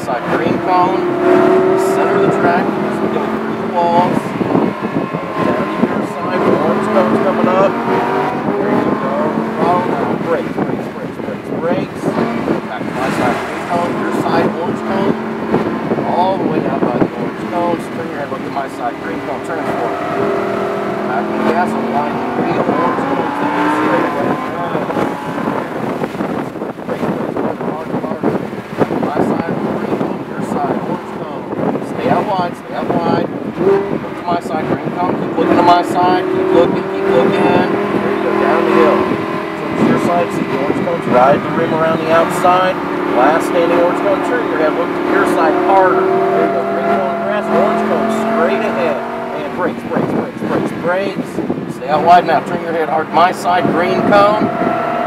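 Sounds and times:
car engine revving in cabin: 0:00.0 - 0:55.0.

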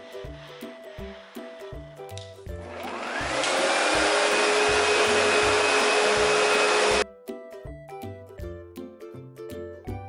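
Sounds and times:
upright vacuum cleaner whining: 0:02.6 - 0:07.0.

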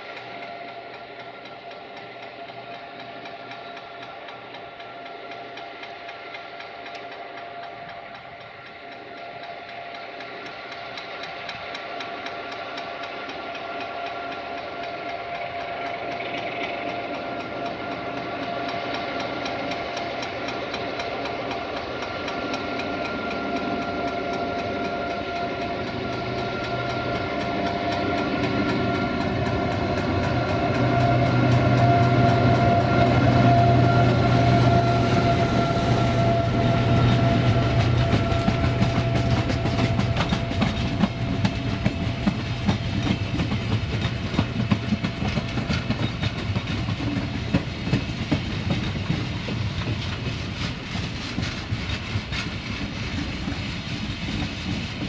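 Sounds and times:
diesel locomotive engine passing: 0:00.0 - 0:55.0
train wheels clattering over rail joints: 0:00.0 - 0:55.0.

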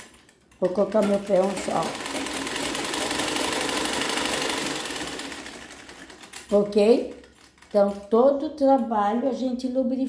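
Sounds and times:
treadle sewing machine clatter: 0:00.0 - 0:08.4.

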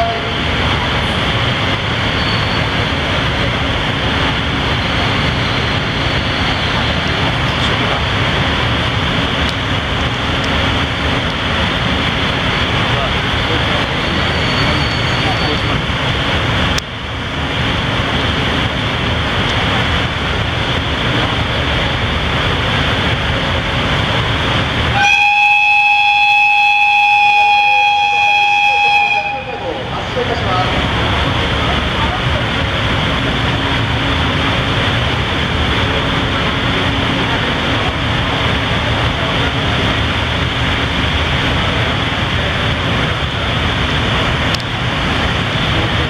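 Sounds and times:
station platform rumble: 0:00.0 - 0:46.0
locomotive whistle high note: 0:02.1 - 0:02.7, 0:14.1 - 0:15.7, 0:24.9 - 0:29.9.

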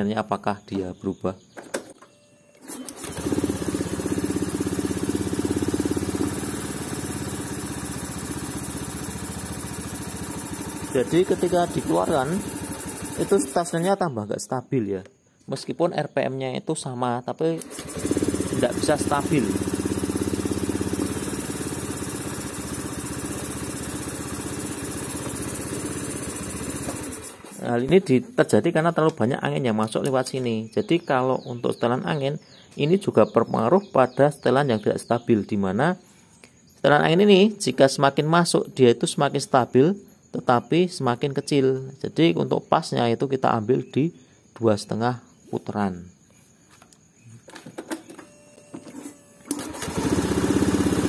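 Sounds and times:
motorcycle engine idling unevenly: 0:03.0 - 0:13.8, 0:17.7 - 0:27.6.

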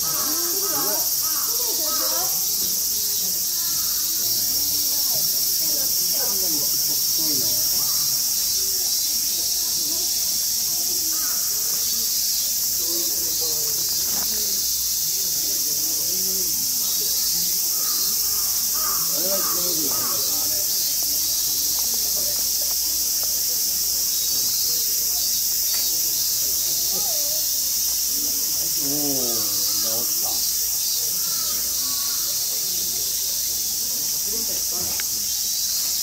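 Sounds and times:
crow cawing: 0:00.0 - 0:02.0, 0:17.7 - 0:20.4, 0:31.2 - 0:32.4
faint human voices: 0:00.0 - 0:36.0
insects buzzing: 0:00.0 - 0:36.0.

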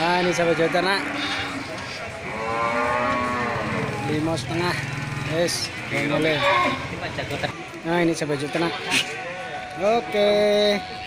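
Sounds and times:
livestock animal calling: 0:00.0 - 0:04.2, 0:05.7 - 0:06.9.

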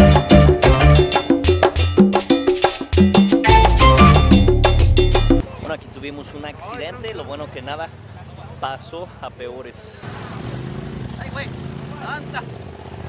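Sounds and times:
background music with percussion beat: 0:00.0 - 0:05.4.

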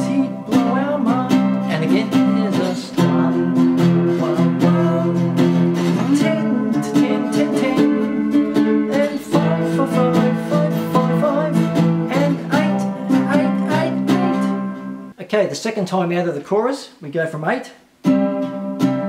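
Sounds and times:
slide guitar chords: 0:00.0 - 0:15.2, 0:18.0 - 0:19.0.

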